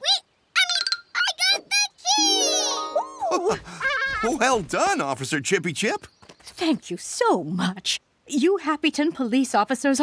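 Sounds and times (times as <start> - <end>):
cartoon child's voice exclaiming: 0.0 - 4.4.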